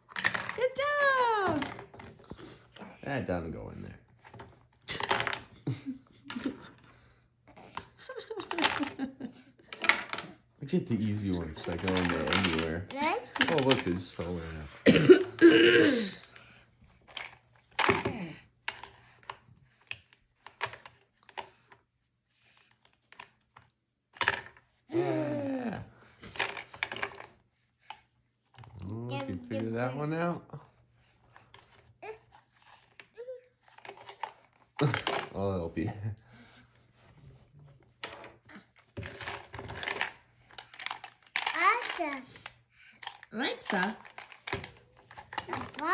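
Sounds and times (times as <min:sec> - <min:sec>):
plastic blocks clattering: 0:00.0 - 0:02.4, 0:04.2 - 0:06.8, 0:08.2 - 0:09.1, 0:09.7 - 0:10.4, 0:11.1 - 0:16.3, 0:24.2 - 0:24.6, 0:26.2 - 0:27.4, 0:33.0 - 0:35.4, 0:38.0 - 0:45.9
person speaking: 0:00.5 - 0:01.8
plastic toy pieces clicking: 0:39.0 - 0:45.8.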